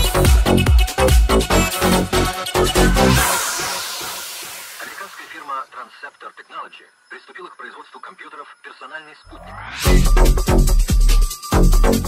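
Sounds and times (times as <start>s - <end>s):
dance music: 0.0s - 5.7s, 9.3s - 12.0s
thin voice speaking: 4.8s - 9.6s.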